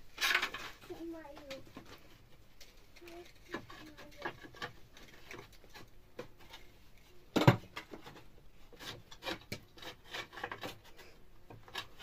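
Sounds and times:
scraping against wooden planks: 0:03.1 - 0:06.8, 0:07.4 - 0:12.0.

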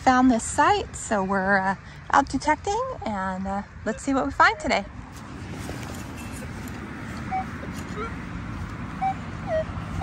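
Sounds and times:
metal detector beeps: 0:07.1 - 0:08.2, 0:09.0 - 0:09.7.

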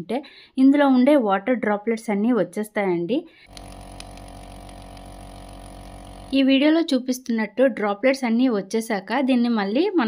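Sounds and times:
air compressor humming and pulsing: 0:03.5 - 0:06.4.

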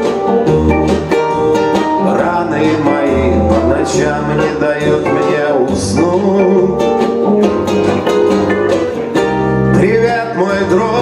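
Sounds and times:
accordion chords: 0:00.0 - 0:11.0
acoustic guitar strumming: 0:00.0 - 0:11.0.

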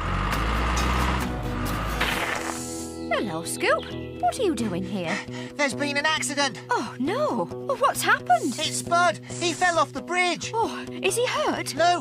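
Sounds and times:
music with held notes: 0:00.3 - 0:09.5.

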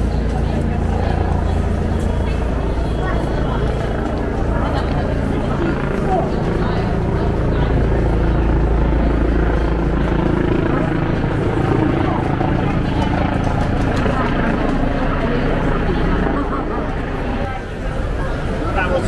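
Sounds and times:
passers-by talking: 0:00.0 - 0:19.0.

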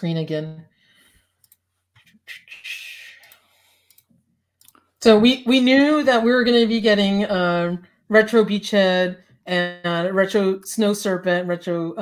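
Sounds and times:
computer mouse clicks: 0:01.4 - 0:02.1, 0:03.2 - 0:04.9.

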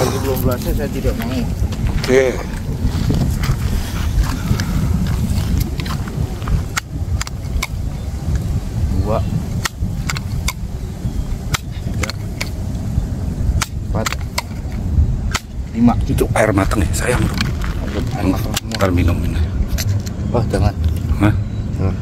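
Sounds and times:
wind rumble on microphone: 0:00.0 - 0:22.0.

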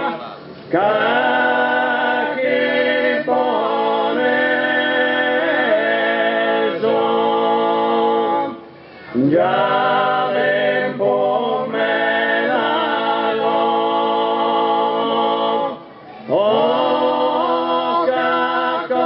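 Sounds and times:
men singing a cappella harmony: 0:00.0 - 0:19.0.

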